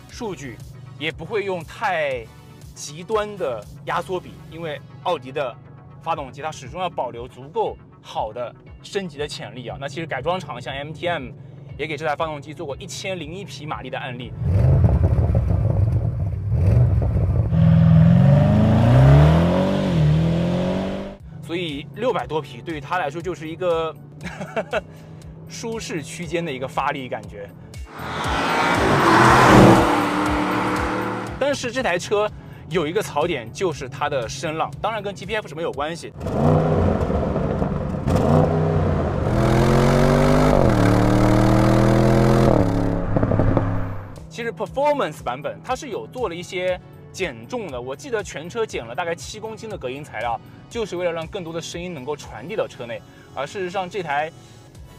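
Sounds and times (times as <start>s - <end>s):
car engine accelerating: 14.3s - 21.2s, 27.9s - 31.5s, 36.2s - 44.2s.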